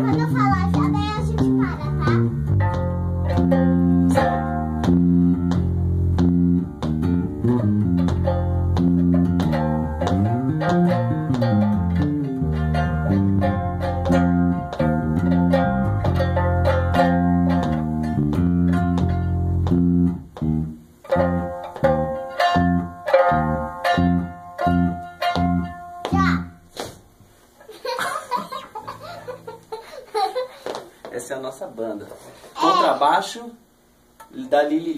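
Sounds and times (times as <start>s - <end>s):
electric bass guitar playing: 0.0s - 26.8s.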